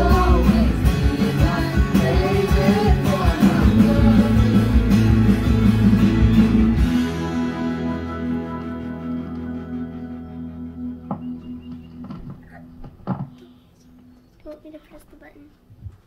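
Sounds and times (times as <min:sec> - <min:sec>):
acoustic guitar strumming: 0:00.0 - 0:13.3.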